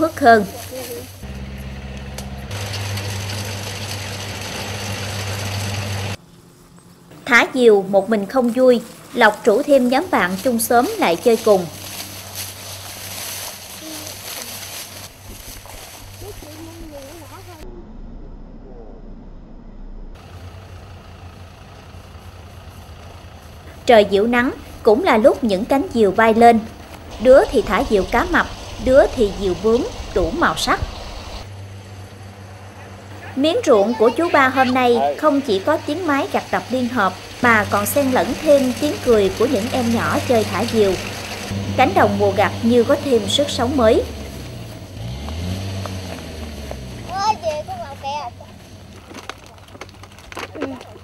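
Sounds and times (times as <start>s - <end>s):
combine harvester engine running: 0.0s - 50.8s.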